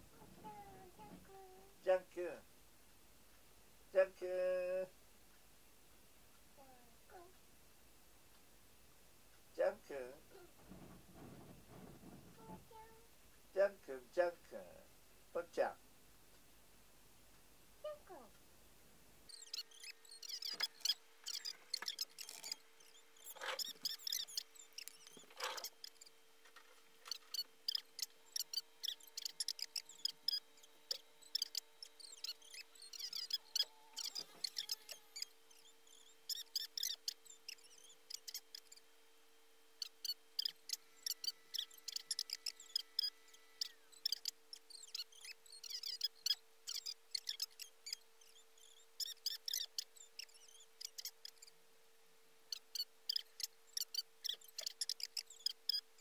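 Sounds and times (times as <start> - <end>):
faint electrical hum: 0.0 - 56.0
soft knocks: 10.6 - 12.7
small clicks and ticks: 19.3 - 38.9, 39.8 - 51.6, 52.5 - 56.0.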